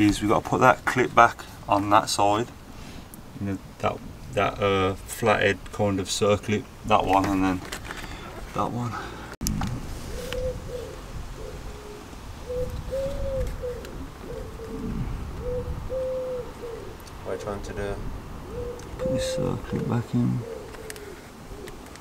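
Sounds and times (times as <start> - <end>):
pigeon cooing: 10.0 - 17.2, 18.4 - 22.0.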